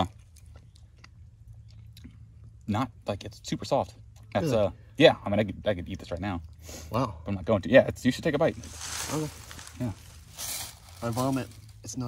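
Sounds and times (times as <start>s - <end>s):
faint chewing: 0.0s - 2.7s
steady low hum: 0.0s - 12.0s.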